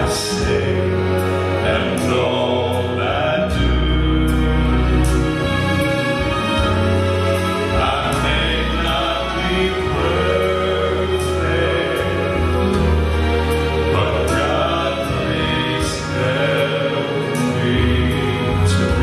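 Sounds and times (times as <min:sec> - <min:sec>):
gospel group singing in harmony: 0:00.0 - 0:19.0
instrumental accompaniment: 0:00.0 - 0:19.0.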